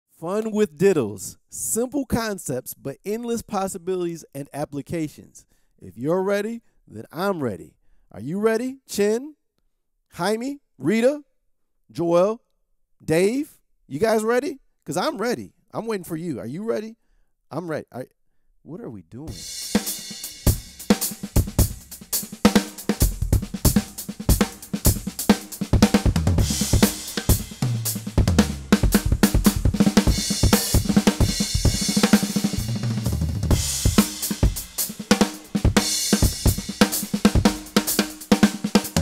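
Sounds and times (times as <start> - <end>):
drum kit funk groove: 19.3 - 39.0.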